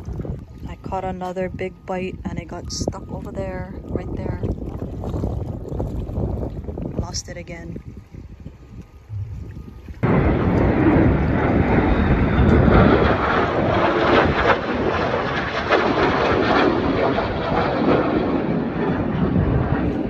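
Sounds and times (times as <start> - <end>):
aircraft flying overhead: 7.8 - 20.0.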